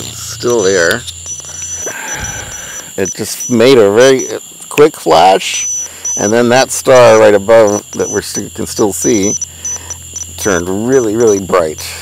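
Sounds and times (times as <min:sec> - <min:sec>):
crickets chirping: 0:00.0 - 0:12.0
low steady hum: 0:00.0 - 0:12.0.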